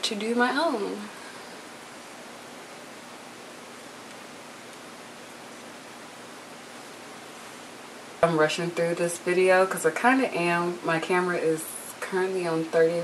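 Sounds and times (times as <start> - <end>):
microphone hiss: 0.0 - 13.0.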